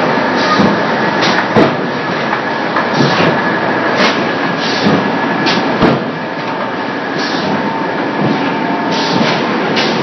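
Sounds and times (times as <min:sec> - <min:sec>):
steady machine noise: 0:00.0 - 0:10.0.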